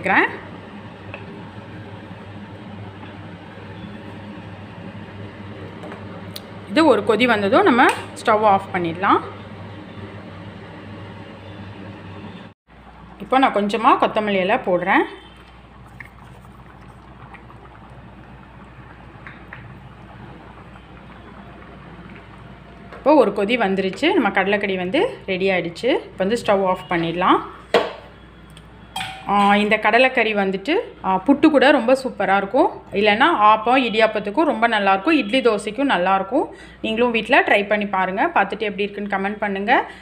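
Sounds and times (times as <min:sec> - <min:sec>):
woman talking: 0:00.0 - 0:00.4, 0:06.7 - 0:09.4, 0:13.2 - 0:15.2, 0:23.0 - 0:27.6, 0:29.3 - 0:39.9
curry bubbling in a pan: 0:12.8 - 0:25.2
low hum: 0:15.3 - 0:25.0.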